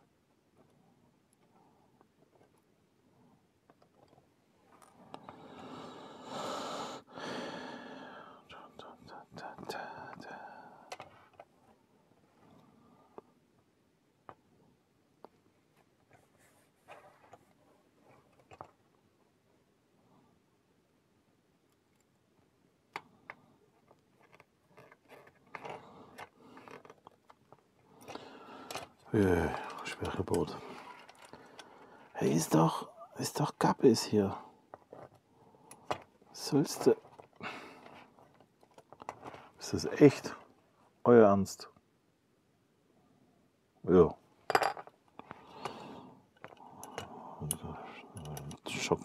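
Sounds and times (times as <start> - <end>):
plastic parts clicking and scraping: 10.9 - 11.5, 16.9 - 19.0, 22.9 - 32.6, 34.7 - 40.0, 44.8 - 48.8
rustling: 23.7 - 32.2.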